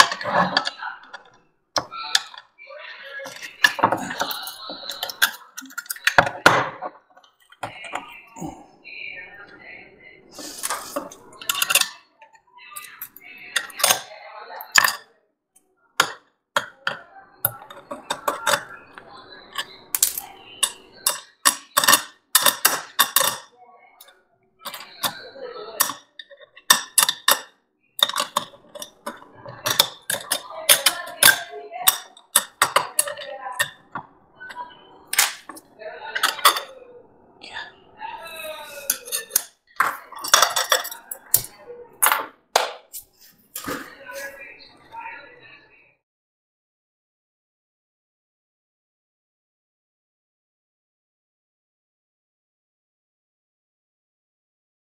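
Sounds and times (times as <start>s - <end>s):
metal pieces knocking: 26.6s - 34.0s, 35.1s - 35.6s, 38.9s - 42.8s.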